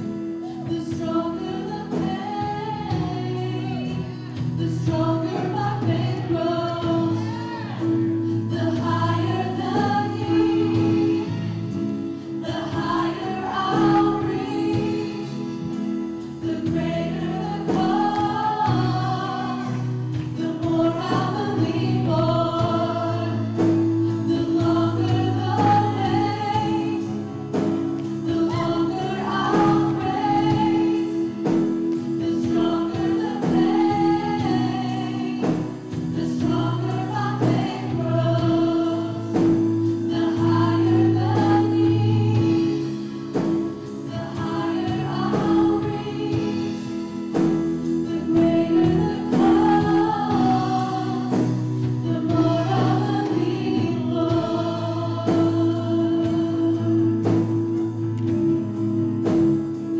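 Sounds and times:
acoustic guitar: 0.0 - 59.9
low keyboard chords: 0.0 - 59.9
men and women singing together: 0.4 - 57.8.

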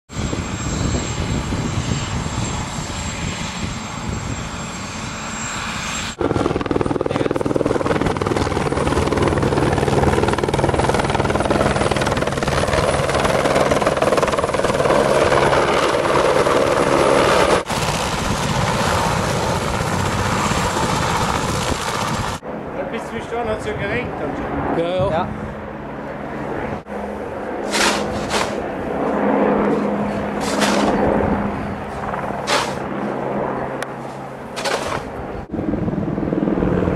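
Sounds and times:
helicopter rotor and engine: 0.1 - 36.9.

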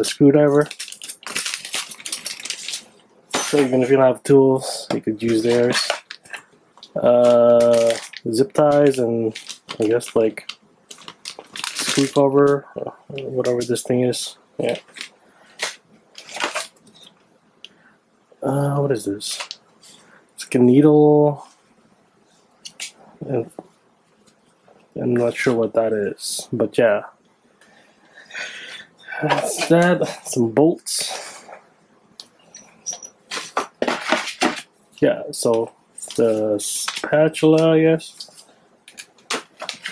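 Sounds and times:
plastic bag crinkling: 0.5 - 3.7, 5.2 - 12.6, 14.6 - 17.1, 38.1 - 39.9.

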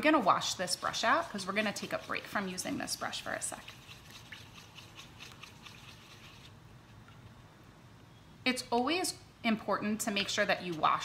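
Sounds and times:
paintbrush splashing in water: 3.5 - 6.6.

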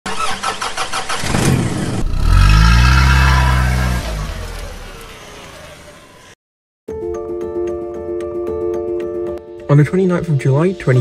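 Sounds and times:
car engine cranking and revving: 0.1 - 6.4.

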